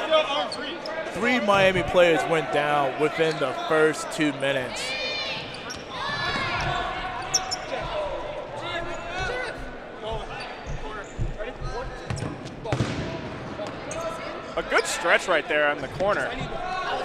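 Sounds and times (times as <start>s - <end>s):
players calling out: 0.0s - 10.6s
sneakers squeaking on gym floor: 5.2s - 12.5s.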